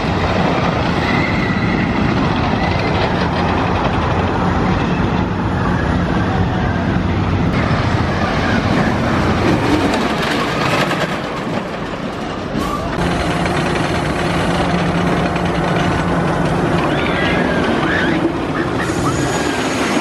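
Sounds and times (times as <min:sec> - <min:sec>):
roller coaster on wooden track: 0:00.0 - 0:20.0.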